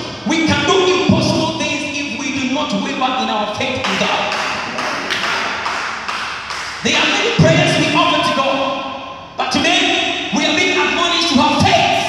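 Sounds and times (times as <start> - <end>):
man preaching over loudspeakers: 0.0 - 5.8, 6.8 - 12.0.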